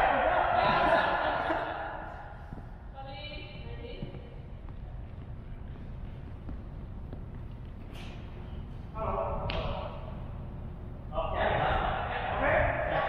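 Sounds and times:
low hum of a hall: 0.0s - 13.0s.

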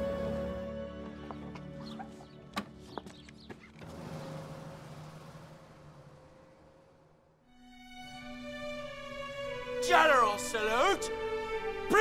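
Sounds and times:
road noise: 0.1s - 9.8s
bus engine hum: 1.6s - 9.2s.

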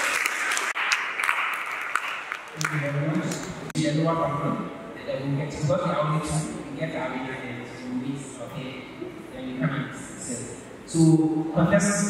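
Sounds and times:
children applauding: 0.0s - 3.5s.

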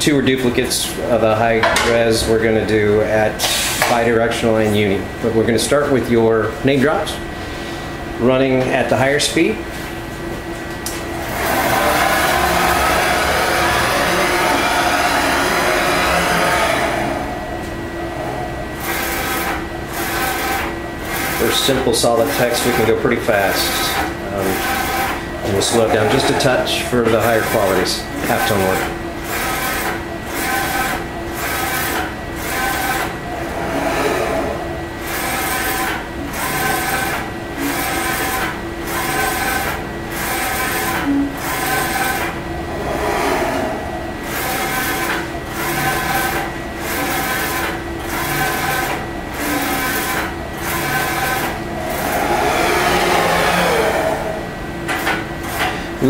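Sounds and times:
motor whine: 10.2s - 55.9s.

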